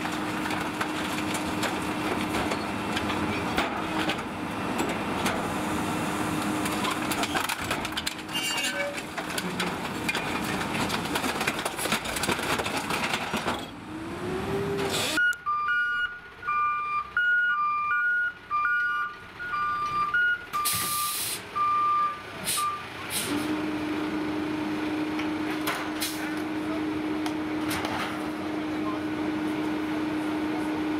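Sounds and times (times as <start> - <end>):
diesel engine hum: 0.0 - 8.3, 8.9 - 30.9
reversing alarm beeping: 15.2 - 22.8
air-brake hiss: 20.7 - 21.5.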